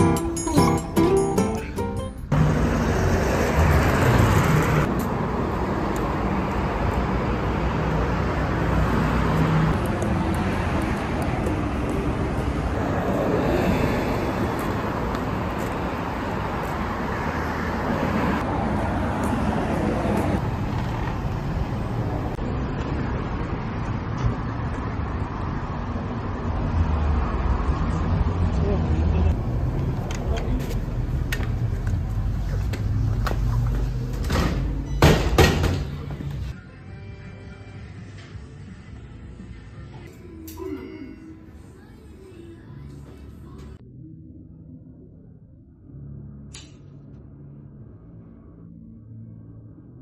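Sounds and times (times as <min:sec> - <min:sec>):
cars and bus driving past: 0:00.0 - 0:50.0.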